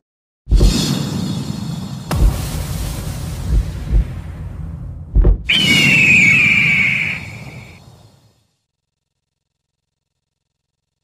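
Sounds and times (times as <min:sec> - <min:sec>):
low rumble: 0:02.1 - 0:05.5
bird of prey screeching: 0:05.5 - 0:07.8.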